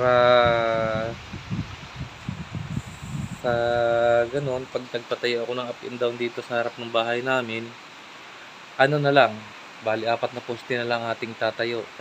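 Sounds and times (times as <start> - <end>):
man's voice drawn-out word: 0.0 - 1.2
wind rumbling on microphone: 0.0 - 5.0.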